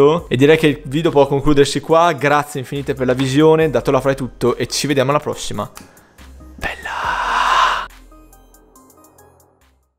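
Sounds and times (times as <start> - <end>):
breathy whoosh: 6.0 - 7.9.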